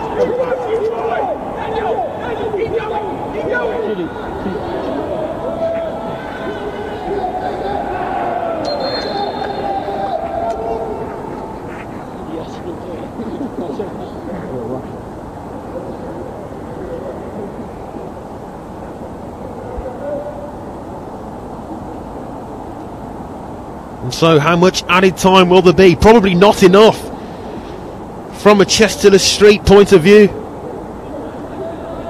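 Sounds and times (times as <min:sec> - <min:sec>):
people shouting and calling: 0:00.0 - 0:11.8
stadium hum: 0:00.0 - 0:32.0.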